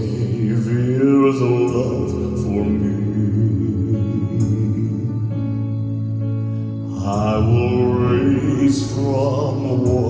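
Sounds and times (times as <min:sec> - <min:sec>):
man singing into microphone: 0:00.0 - 0:05.8, 0:06.8 - 0:10.0
backing track of held chords: 0:00.0 - 0:10.0.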